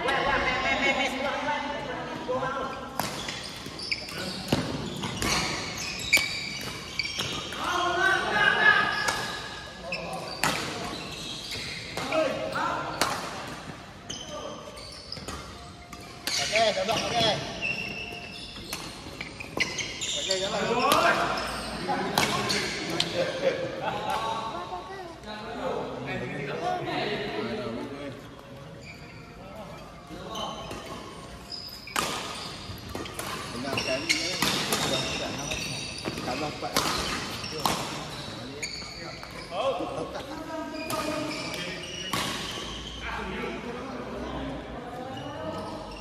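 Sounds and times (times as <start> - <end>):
rackets striking shuttlecock: 31.9 - 33.7.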